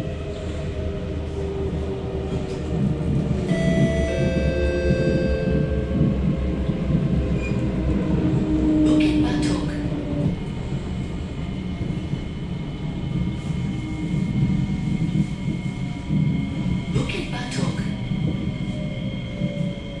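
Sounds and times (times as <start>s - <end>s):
train wheels rumbling on rail: 0.0s - 20.0s.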